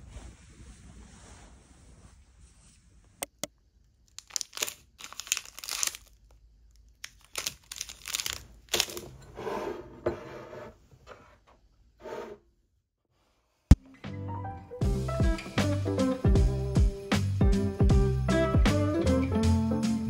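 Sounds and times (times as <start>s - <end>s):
plastic wrapper crinkling and tearing: 3.9s - 9.0s.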